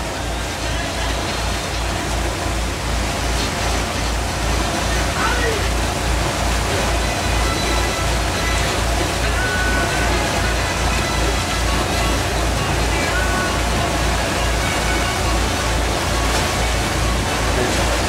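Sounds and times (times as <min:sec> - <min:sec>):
boat engine throbbing: 0:00.0 - 0:18.0.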